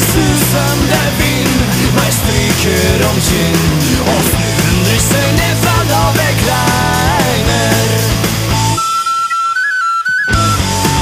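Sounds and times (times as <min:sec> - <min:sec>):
rock band playing: 0:00.0 - 0:09.3, 0:10.2 - 0:11.0
high woodwind melody: 0:08.6 - 0:11.0.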